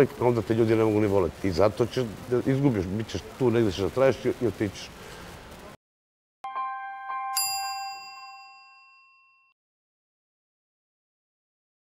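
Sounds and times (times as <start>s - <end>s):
bright logo chime: 6.4s - 9.6s.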